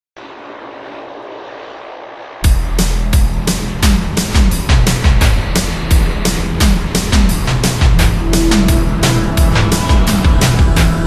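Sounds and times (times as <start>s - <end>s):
jet engine running: 0.2s - 11.0s.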